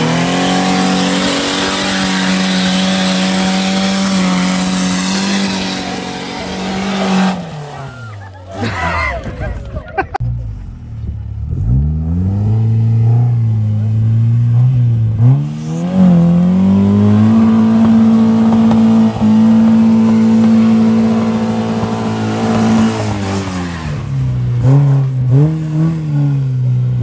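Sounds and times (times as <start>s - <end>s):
car engine revving uphill: 0.0s - 27.0s.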